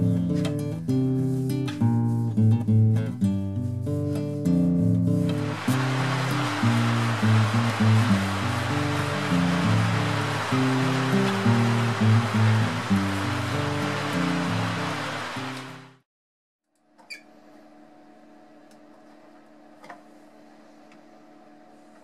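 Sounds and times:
rushing hiss: 0:05.3 - 0:16.0.

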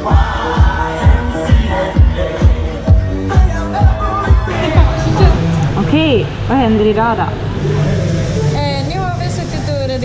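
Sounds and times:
low background hum: 0:02.7 - 0:10.0.

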